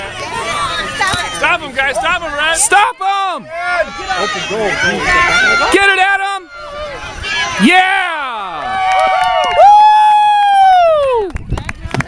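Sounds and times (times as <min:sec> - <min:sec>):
spectators yelling: 0:00.0 - 0:11.1
high-pitched cheering yell: 0:02.7 - 0:11.3.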